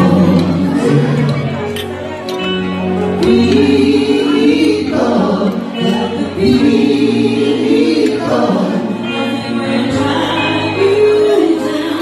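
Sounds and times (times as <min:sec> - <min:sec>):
woman and man singing: 0:00.0 - 0:01.5, 0:03.2 - 0:12.0
live band playing: 0:00.0 - 0:12.0.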